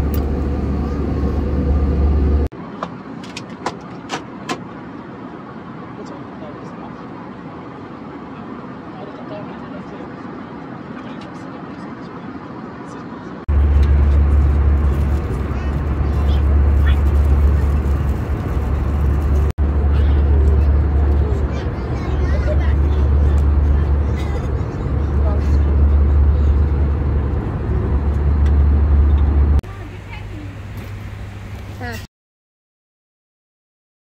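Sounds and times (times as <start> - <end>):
airliner cabin drone: 0.0 - 2.5, 7.8 - 32.1
passengers talking faintly: 14.8 - 18.5, 19.7 - 27.9.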